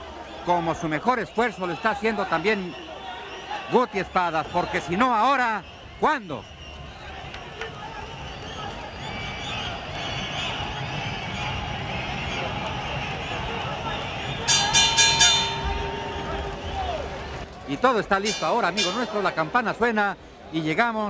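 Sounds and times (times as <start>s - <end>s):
arena crowd noise: 0.0s - 21.0s
boxing ring bell ringing: 14.5s - 16.4s, 18.3s - 19.2s.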